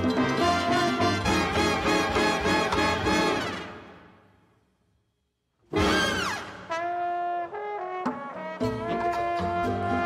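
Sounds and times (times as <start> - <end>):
trombone playing jazz: 0.0 - 3.7, 5.7 - 10.0
bass: 0.0 - 3.8, 8.6 - 10.0.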